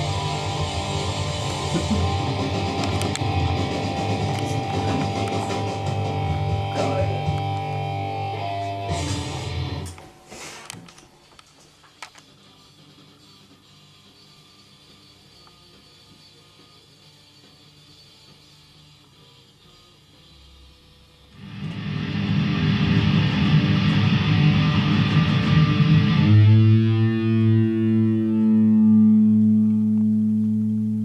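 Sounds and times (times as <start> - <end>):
amplifier hum: 0.0 - 10.3, 20.5 - 31.0
distorted electric guitar: 0.0 - 10.3, 20.5 - 31.0.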